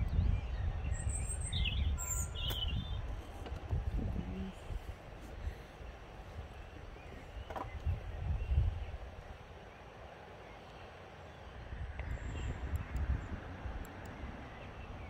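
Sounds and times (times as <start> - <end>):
wind buffeting microphone: 0.0 - 10.2, 11.4 - 15.0
faint bird chirps: 0.2 - 3.1.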